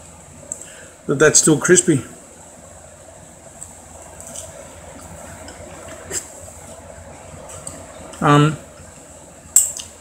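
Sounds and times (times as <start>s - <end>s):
background hiss and hum: 0.0s - 10.0s.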